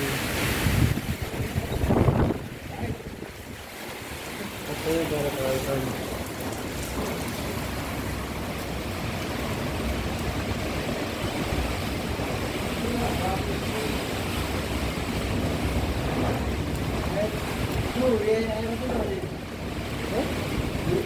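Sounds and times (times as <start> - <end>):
wind and rain rushing: 0.0 - 21.0
wind buffeting microphone: 0.2 - 21.0.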